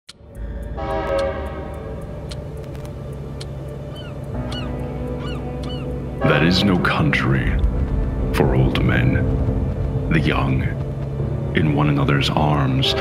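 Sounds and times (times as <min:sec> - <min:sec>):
evenly spaced ticks: 0:00.1 - 0:07.7
low drone: 0:00.1 - 0:13.0
horn-like chord: 0:00.4 - 0:02.3, 0:03.2 - 0:09.7.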